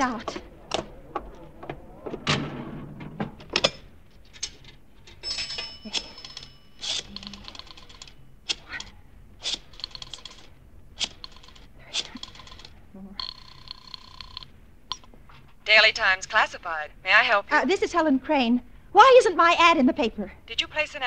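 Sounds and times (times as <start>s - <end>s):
coin dropping into coin slot: 4.4s - 8.1s
coin chime: 5.2s - 8.0s
telephone ring tone: 5.2s - 8.3s, 11.2s - 14.5s
rotary dial clicking: 9.5s - 15.0s.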